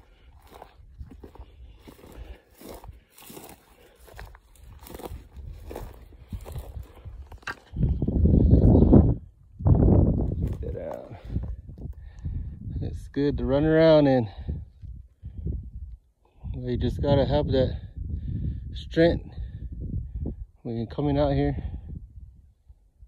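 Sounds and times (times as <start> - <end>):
footsteps crunching dry grass: 0.0 - 9.0, 9.6 - 12.1
low rushing sounds on microphone: 4.1 - 20.6
twigs snapping: 7.3 - 7.8.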